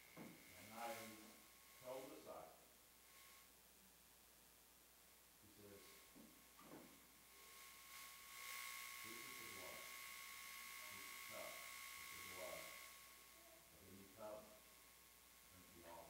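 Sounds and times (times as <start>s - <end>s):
high-pitched electronic whine: 7.3s - 16.0s.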